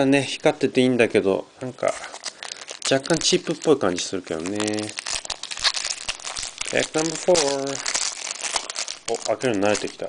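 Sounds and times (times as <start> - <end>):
foil wrapper crinkling and tearing: 1.8 - 10.0.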